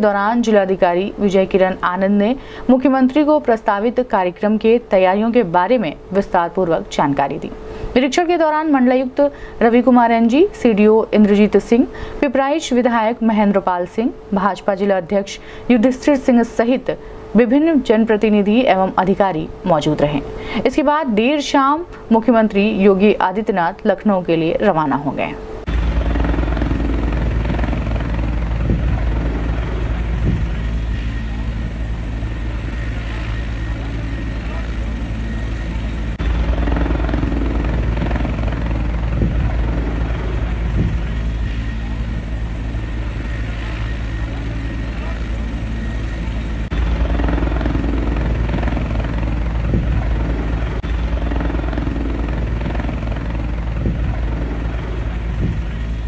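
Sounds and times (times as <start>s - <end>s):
helicopter rotor and engine drone: 0.0s - 56.0s.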